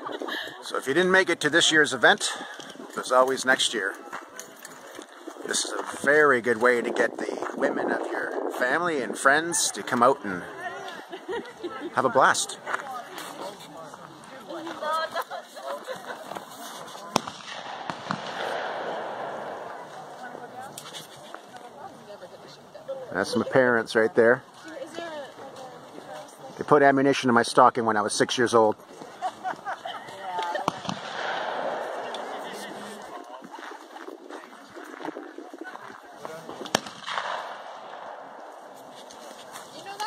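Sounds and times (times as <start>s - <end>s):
people talking: 0.0s - 4.8s, 5.5s - 17.2s, 19.8s - 30.7s, 32.0s - 33.6s
gunshot: 17.1s - 19.9s, 30.6s - 32.4s, 36.6s - 38.4s.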